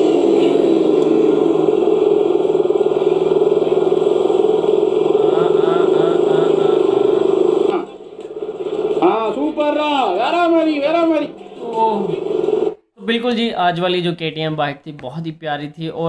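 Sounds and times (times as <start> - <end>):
motorcycle engine running: 0.0 - 12.8
person speaking: 13.0 - 16.0.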